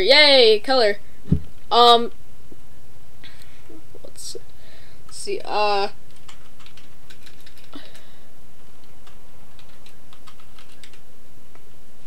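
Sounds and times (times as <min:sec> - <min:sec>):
low background hum: 0:00.0 - 0:12.0
typing on computer keyboard: 0:06.1 - 0:08.0, 0:09.0 - 0:11.0.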